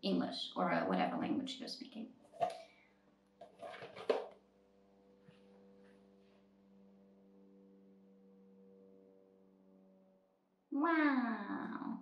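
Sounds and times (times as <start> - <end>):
cardboard box rustling and scraping: 3.4 - 4.2.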